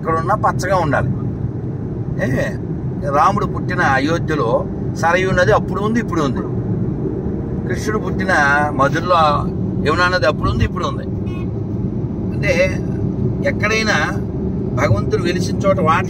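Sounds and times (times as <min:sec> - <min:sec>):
man talking: 0:00.0 - 0:01.2, 0:02.2 - 0:06.5, 0:07.7 - 0:11.2, 0:12.3 - 0:14.2, 0:14.8 - 0:16.0
car road and engine rumble: 0:00.0 - 0:16.0.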